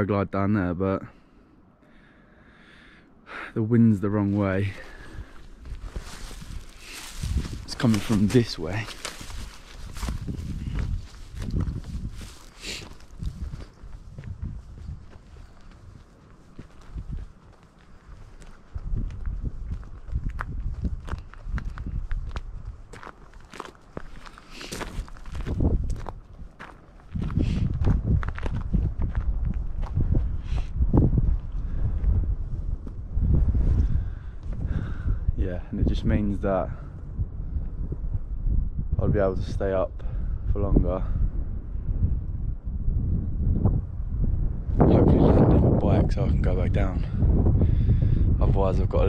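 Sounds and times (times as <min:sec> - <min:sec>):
wind rumbling on microphone: 0:04.0 - 0:49.0
footsteps crunching on gravel: 0:04.3 - 0:32.1.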